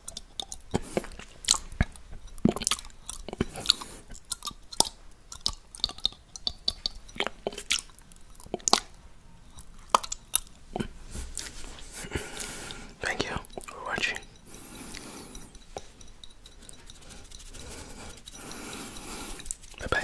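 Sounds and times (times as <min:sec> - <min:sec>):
tongue licking glass: 0:00.0 - 0:20.0.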